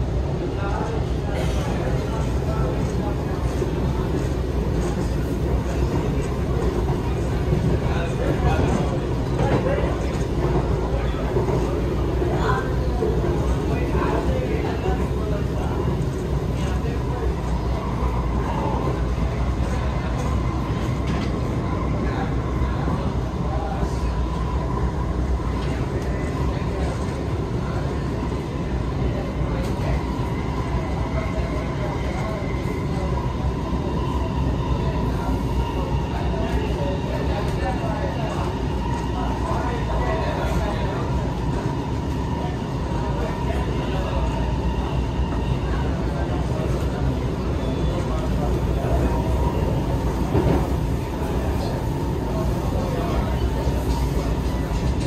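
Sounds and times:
rumble of wheels on rail: 0.0 - 55.0.

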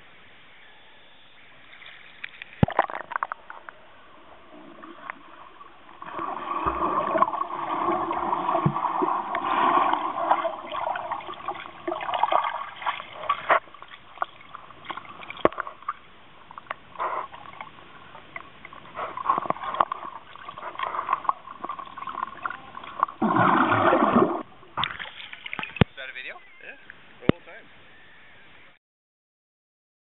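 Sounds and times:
underwater bubbling and gurgling: 2.1 - 25.9
muffled underwater sound: 16.8 - 28.8.

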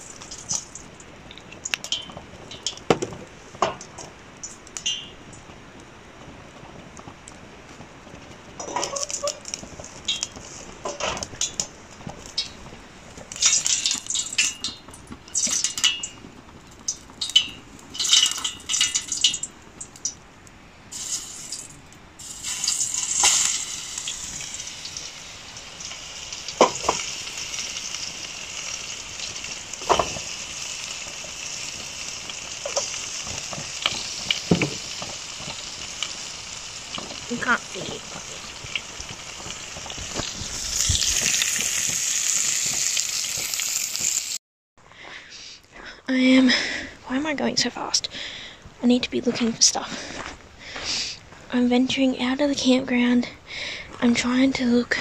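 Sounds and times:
meat sizzling in a frying pan: 0.0 - 5.1, 8.6 - 19.5, 20.9 - 44.4
sharp crackles and clicks: 0.0 - 44.4.

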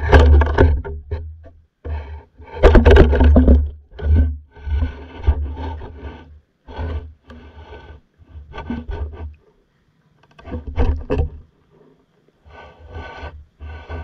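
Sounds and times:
underwater camera rumbling and scraping: 0.0 - 14.0.

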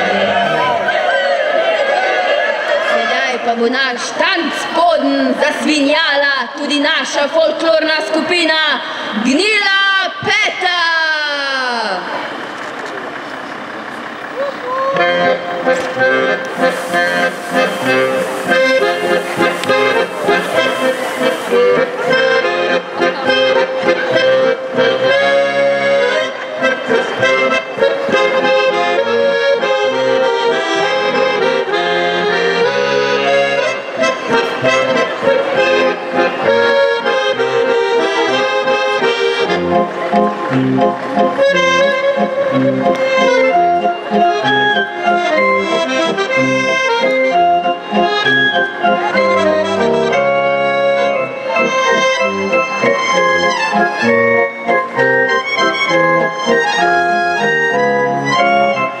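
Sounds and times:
accordion folk dance tune: 13.9 - 59.0.

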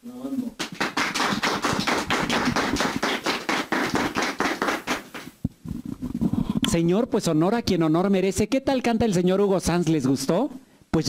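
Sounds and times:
people clapping: 0.6 - 5.4.

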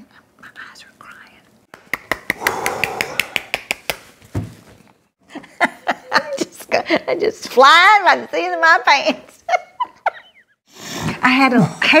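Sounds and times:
soft whispering: 0.0 - 1.6.

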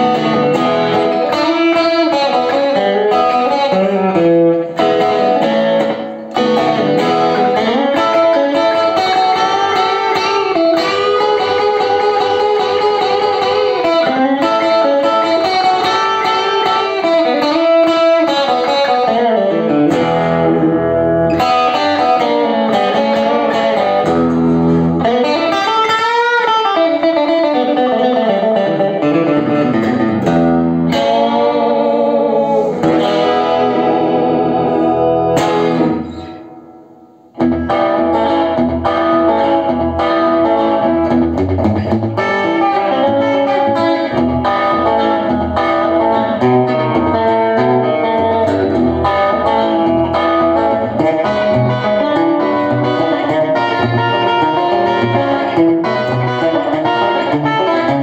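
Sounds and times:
electric guitar with bending notes: 0.0 - 58.0.

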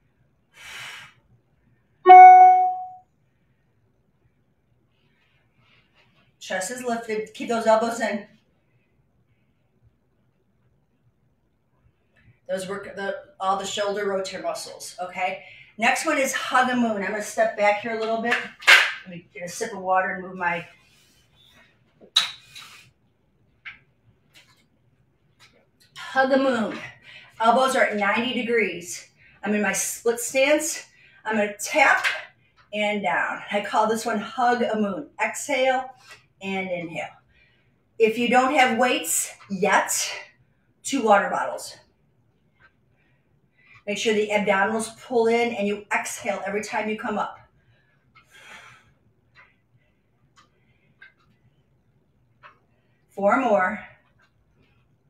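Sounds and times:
bright chime tone: 2.1 - 3.0.

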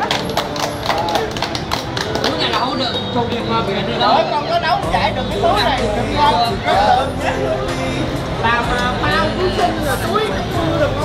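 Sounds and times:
hand claps: 0.0 - 3.4
background music: 0.0 - 11.0
people talking: 0.8 - 11.0.

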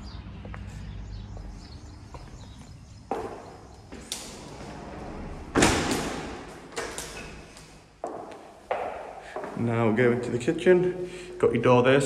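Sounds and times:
footsteps in tiled room: 0.0 - 10.8
door being shut: 4.0 - 7.5.

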